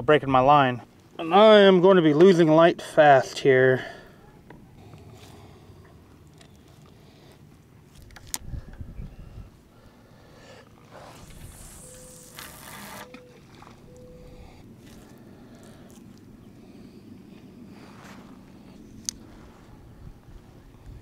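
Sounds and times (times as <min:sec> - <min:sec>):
reel hiss: 0:10.9 - 0:13.2.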